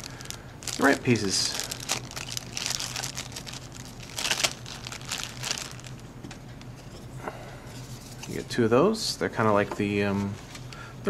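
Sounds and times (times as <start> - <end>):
plastic bag crinkling: 0.0 - 6.1.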